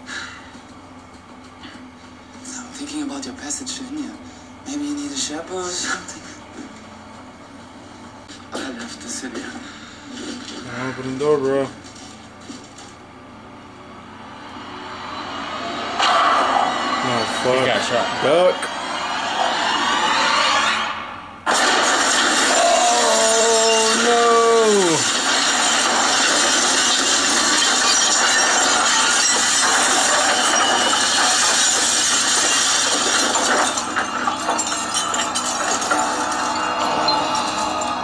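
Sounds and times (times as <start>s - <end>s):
loud mechanical noise: 0.0s - 38.0s.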